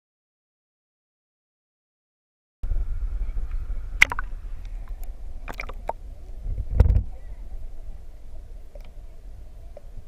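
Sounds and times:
wind buffeting microphone: 2.7 - 8.5.

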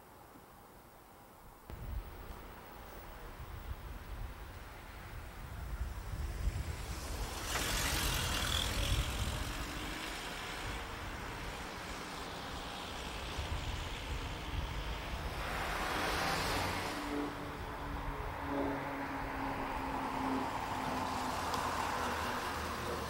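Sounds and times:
cars driving past: 1.7 - 23.0.

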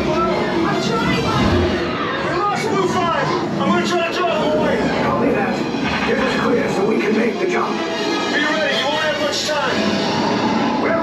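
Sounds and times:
indistinct voices: 0.0 - 11.0
music playing: 0.0 - 11.0.

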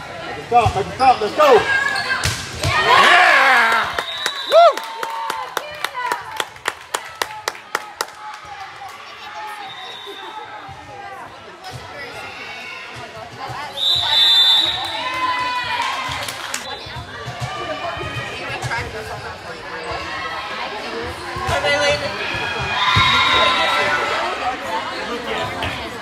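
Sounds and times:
voices echoing in sports hall: 0.0 - 26.0
brief cheers: 2.7 - 5.4.

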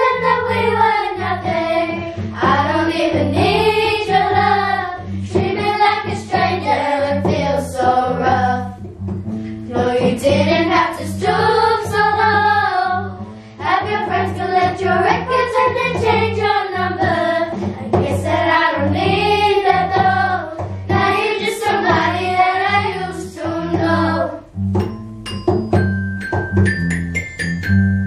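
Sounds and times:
children singing: 0.0 - 8.8, 9.7 - 24.4.

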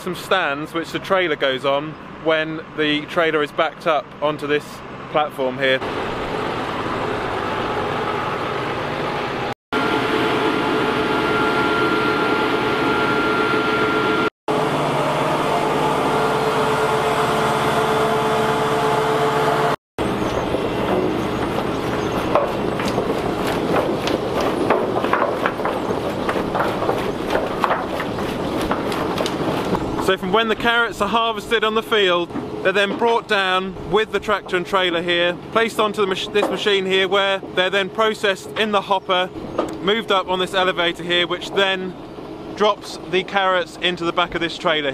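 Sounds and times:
machinery humming: 5.7 - 44.9.

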